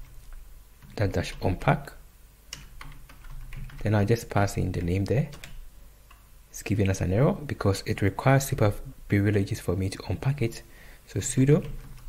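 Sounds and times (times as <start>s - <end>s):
computer keyboard typing: 2.5s - 6.2s, 11.4s - 12.0s.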